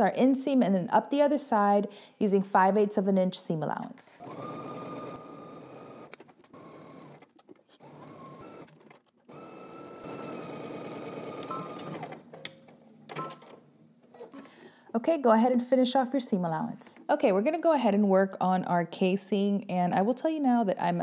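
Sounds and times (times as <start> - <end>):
sewing machine stitching: 4.2 - 12.4.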